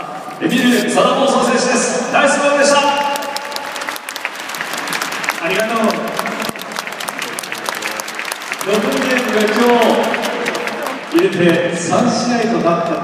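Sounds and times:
crowd applauding: 2.7s - 13.0s
voice over loudspeakers: 5.4s - 13.0s.

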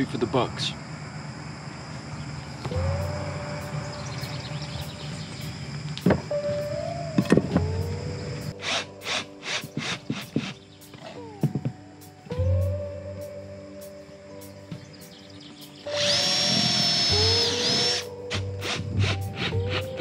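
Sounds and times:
background music with beat: 2.7s - 20.0s.

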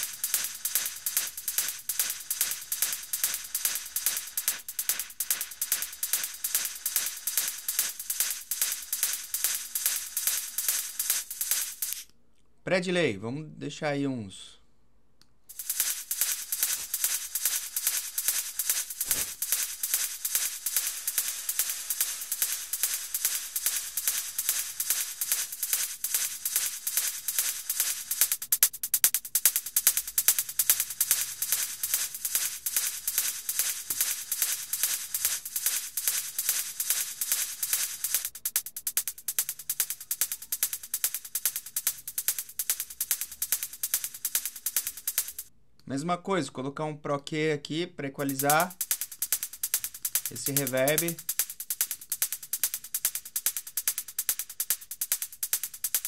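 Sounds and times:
electronic drum loop: 0.0s - 12.0s, 15.5s - 45.5s, 48.1s - 56.0s.

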